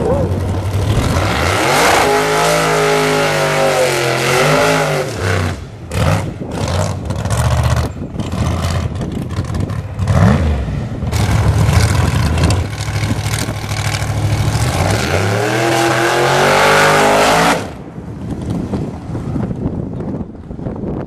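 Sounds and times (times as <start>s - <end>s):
race car engine revving hard: 0.2s - 8.9s, 10.0s - 17.8s.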